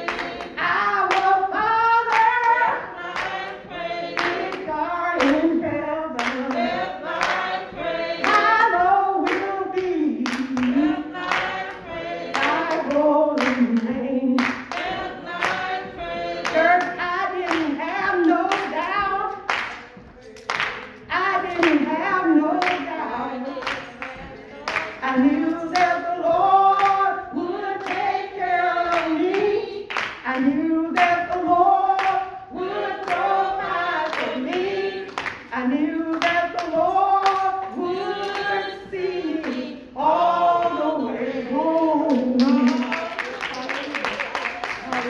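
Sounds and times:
woman singing into a microphone: 0:00.0 - 0:20.2, 0:21.0 - 0:43.1
hand claps: 0:02.1 - 0:05.5, 0:06.2 - 0:21.8, 0:22.6 - 0:22.9, 0:23.5 - 0:27.1, 0:27.8 - 0:28.2, 0:28.8 - 0:32.3, 0:33.0 - 0:35.5, 0:36.1 - 0:38.7, 0:42.1 - 0:45.0.

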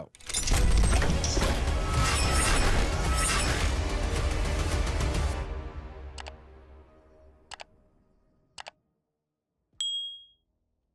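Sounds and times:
bright bell ding: 0:09.8 - 0:10.4.

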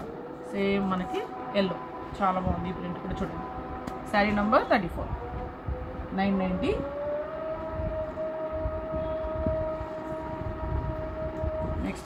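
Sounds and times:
low rumble: 0:00.0 - 0:12.0
siren-like tone: 0:00.0 - 0:12.0.

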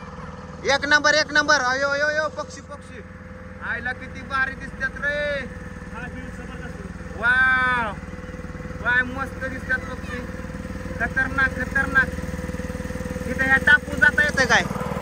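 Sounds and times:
motorboat engine running: 0:00.0 - 0:15.0
voices calling out: 0:00.0 - 0:15.0.

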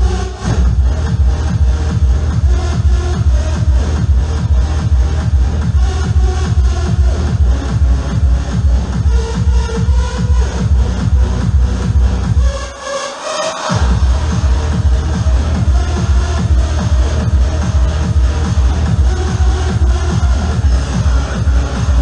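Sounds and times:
hard trance over club speakers: 0:00.0 - 0:22.0
fast kick drum: 0:00.4 - 0:12.4, 0:13.8 - 0:22.0.

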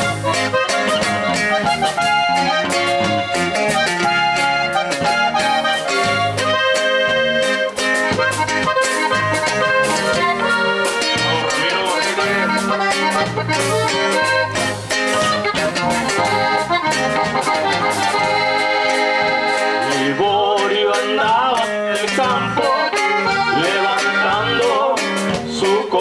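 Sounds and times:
accordion melody: 0:00.0 - 0:26.0
electric bass: 0:00.0 - 0:26.0
strummed guitar: 0:00.0 - 0:26.0.

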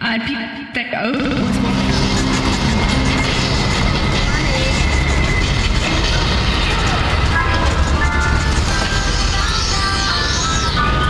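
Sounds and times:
people's voices: 0:00.1 - 0:11.0
road traffic din: 0:01.4 - 0:11.0.

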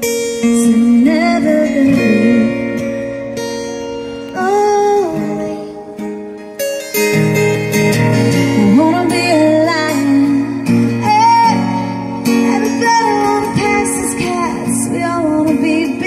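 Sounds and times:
acoustic guitar: 0:00.0 - 0:16.0.

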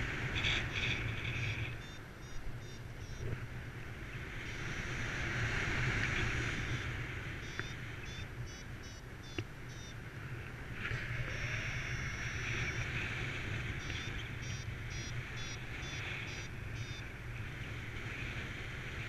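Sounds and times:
wind rushing over microphone: 0:00.0 - 0:09.1
faint high-pitched chirps: 0:00.5 - 0:03.2, 0:06.6 - 0:10.0, 0:11.0 - 0:13.0, 0:13.8 - 0:17.1.

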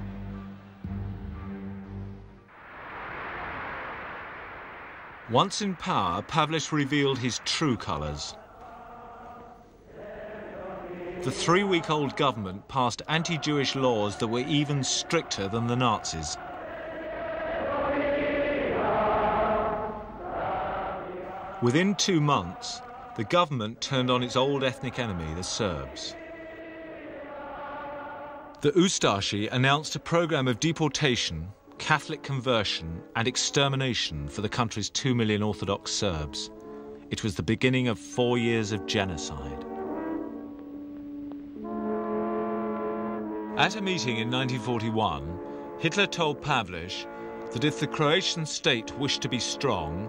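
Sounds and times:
large crowd chanting: 0:05.3 - 0:28.7.

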